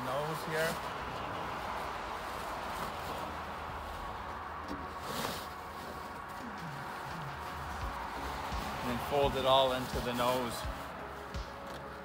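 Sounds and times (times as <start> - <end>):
fabric cover rustling: 0.0 - 12.0.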